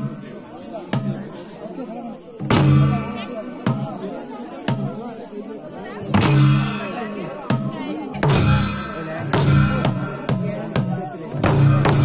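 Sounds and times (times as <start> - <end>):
kettle drum beat: 0.0 - 1.6, 2.3 - 5.2, 5.9 - 12.0
crowd voices: 0.0 - 12.0
cymbal clash: 8.2 - 10.6.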